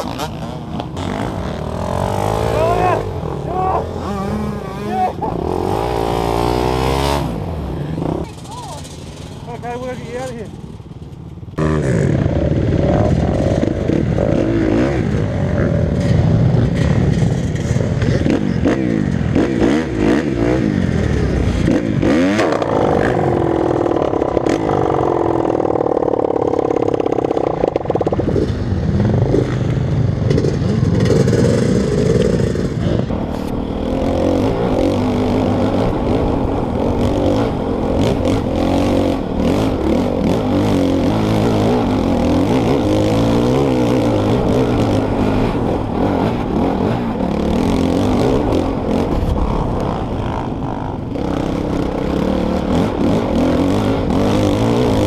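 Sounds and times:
dirt bike engines revving: 0.0 - 55.0.

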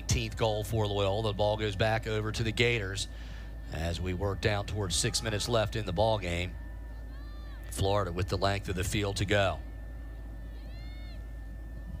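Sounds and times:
field ambience: 0.0 - 12.0.

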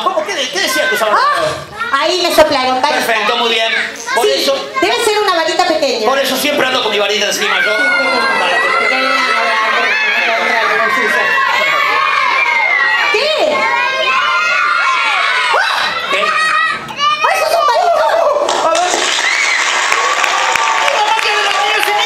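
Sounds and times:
children shouting and cheering: 0.6 - 2.0, 7.2 - 22.0.

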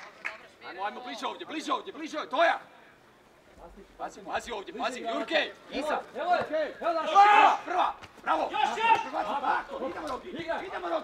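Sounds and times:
voices shouting and calling out: 0.4 - 11.0.

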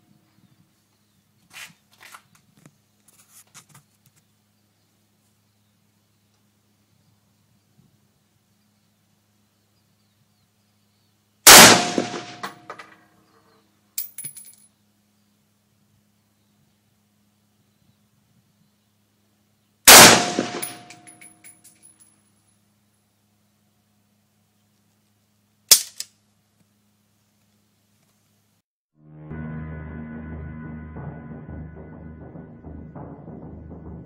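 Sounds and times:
rifle shot: 11.5 - 12.6, 19.9 - 20.9
light metallic clinks: 14.0 - 14.8, 20.6 - 22.6.

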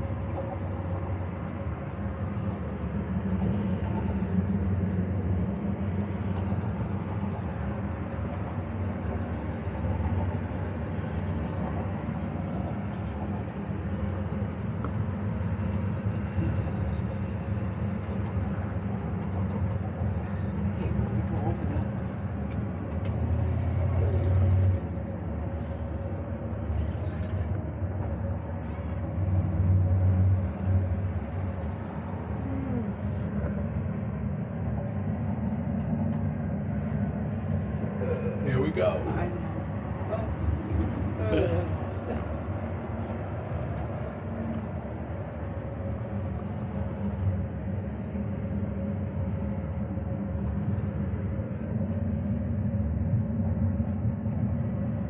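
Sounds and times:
cable car cabin rumble: 0.0 - 55.0.

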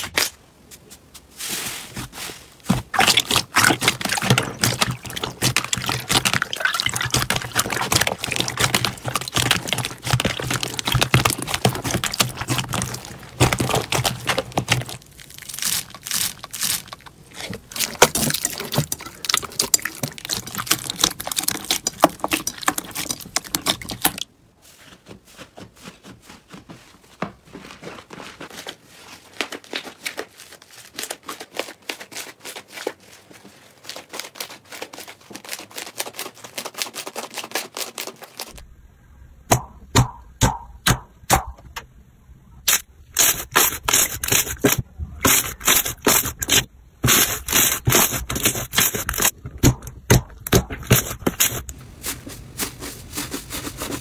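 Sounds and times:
slime squelching: 2.7 - 24.3, 42.7 - 54.0
slime popping and crackling: 2.9 - 24.2.

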